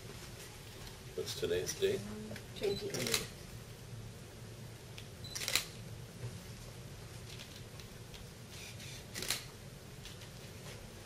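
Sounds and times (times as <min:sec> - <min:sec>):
camera shutter: 0:05.3 - 0:05.8, 0:08.5 - 0:09.5.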